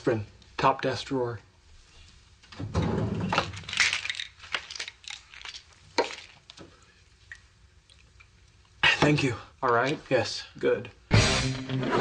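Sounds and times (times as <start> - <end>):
small objects rattling in drawer: 2.8 - 6.5.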